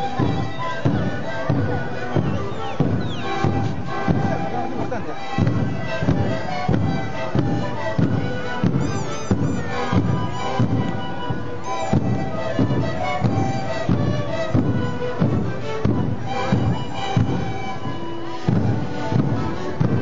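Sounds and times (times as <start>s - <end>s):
panpipes playing held chords: 0.0s - 20.0s.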